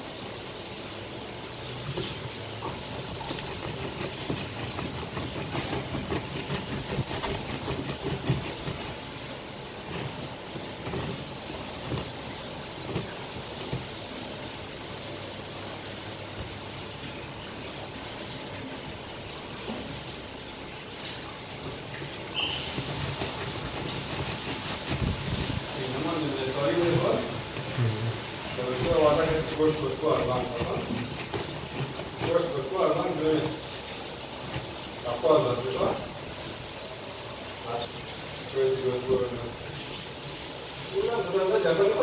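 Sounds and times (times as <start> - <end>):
plastic grinding on plastic: 1.6 - 14.2, 21.5 - 36.6
plastic juicer scraping and squelching: 1.6 - 14.3, 21.5 - 36.6
high squeak: 22.3 - 23.7.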